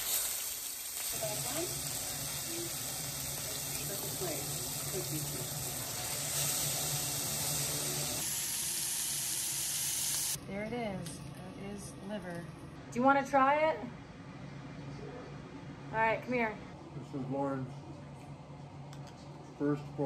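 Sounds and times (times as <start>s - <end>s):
liver sizzling in a pan: 0.0s - 10.4s.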